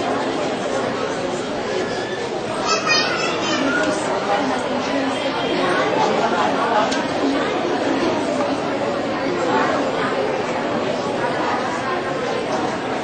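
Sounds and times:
murmur of overlapping voices: 0.0s - 13.0s.

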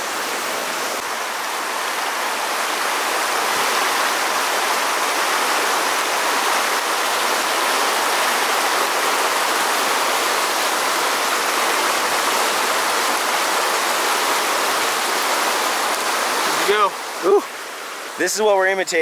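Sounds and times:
river rushing over rocks: 0.0s - 19.0s.

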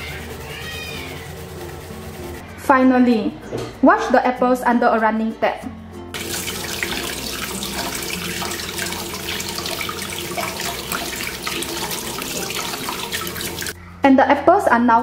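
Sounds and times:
tap water running: 6.2s - 13.8s
water splashing into metal bowl: 6.2s - 13.8s.

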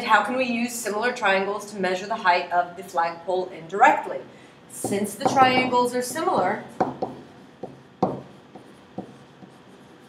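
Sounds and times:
stylus tapping on tablet: 4.8s - 9.6s.

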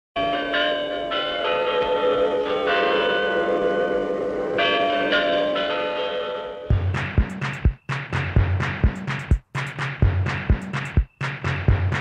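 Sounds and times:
clock-tower bells ringing: 0.2s - 7.0s.

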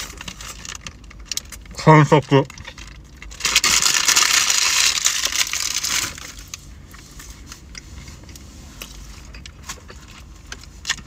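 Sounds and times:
man talking: 1.8s - 2.5s
paper wrapper rustling and crinkling: 2.1s - 6.6s.

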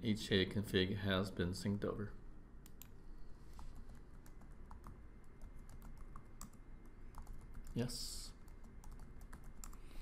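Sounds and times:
typing on computer keyboard: 3.8s - 7.8s, 8.4s - 9.8s.

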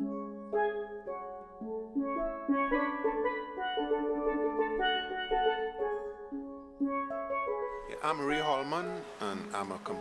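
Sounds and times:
steelpan melody: 0.0s - 10.0s.

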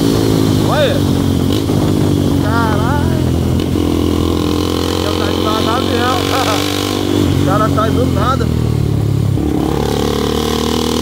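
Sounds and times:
wind rush on microphone: 0.0s - 3.8s
motorcycle engine running: 0.0s - 11.0s.

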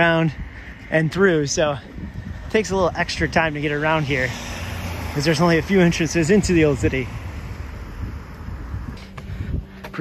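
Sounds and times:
road traffic rumble: 0.0s - 10.0s
wind on microphone: 0.1s - 5.2s, 6.3s - 9.8s.

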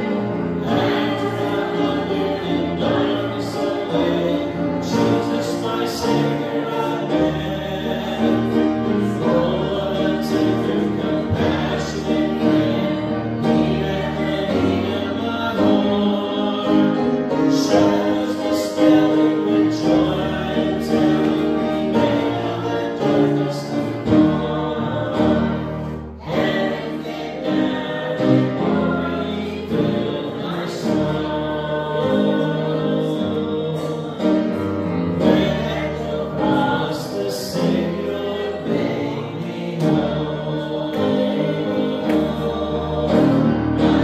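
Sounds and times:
voices singing a slow hymn: 0.0s - 44.0s.

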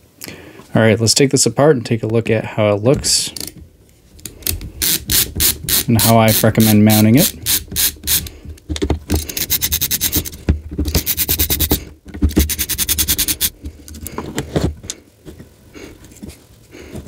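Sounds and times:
ratcheting screwdriver clicking: 4.2s - 8.3s, 9.2s - 13.5s
parts handled clicks and knocks: 7.7s - 15.5s.

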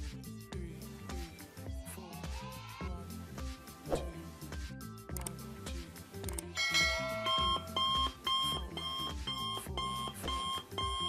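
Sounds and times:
background music: 0.0s - 11.0s
alarm clock beeping: 6.6s - 11.0s.

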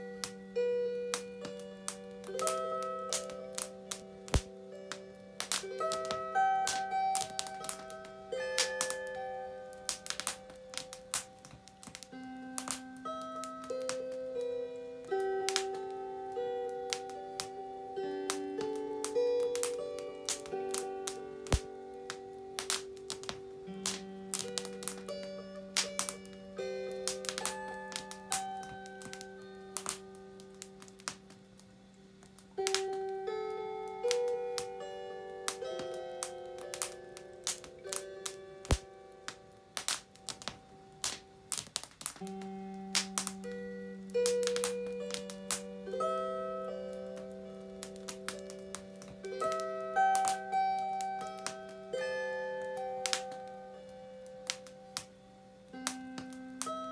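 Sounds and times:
firewood crackling and popping: 0.0s - 56.9s
lyre plucked melody: 0.0s - 56.9s.

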